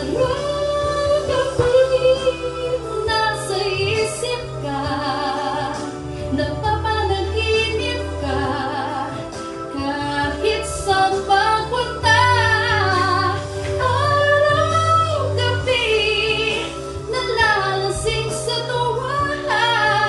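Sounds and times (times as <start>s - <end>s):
backing music: 0.0s - 20.0s
woman singing into a microphone: 0.0s - 20.0s.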